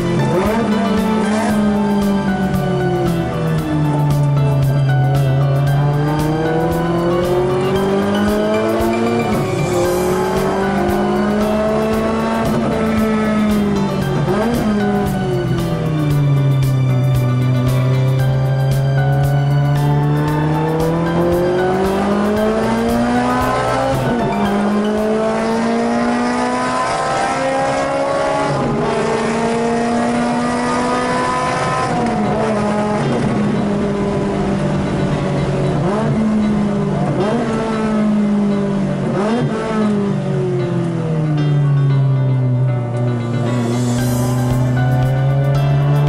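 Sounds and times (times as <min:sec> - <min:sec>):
car engine revving through gears: 0:00.0 - 0:46.0.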